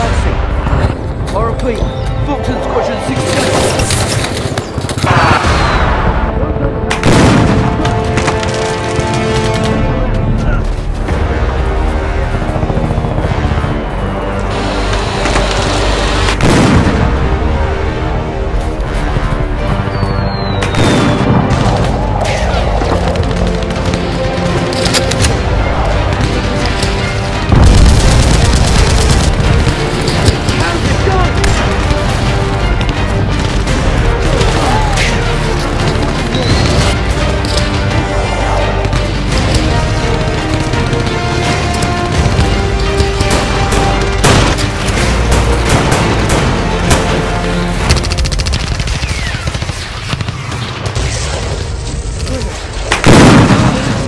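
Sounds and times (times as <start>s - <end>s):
film soundtrack music: 0.0s - 54.0s
booming explosions: 4.6s - 9.4s, 16.2s - 18.0s, 20.7s - 24.4s, 25.5s - 35.4s, 38.6s - 54.0s
gunfire: 39.8s - 52.1s, 52.9s - 54.0s.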